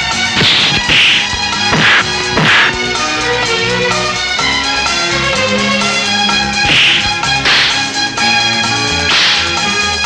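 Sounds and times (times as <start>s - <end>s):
film score with sustained notes: 0.0s - 10.0s
sharp whip-like swish: 0.4s - 2.8s, 6.6s - 7.9s, 9.1s - 9.6s.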